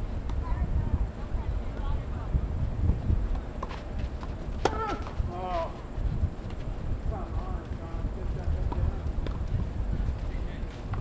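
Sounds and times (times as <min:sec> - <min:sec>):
wind rumble on microphone: 0:00.0 - 0:11.0
tennis ball struck by rackets: 0:03.3 - 0:05.2.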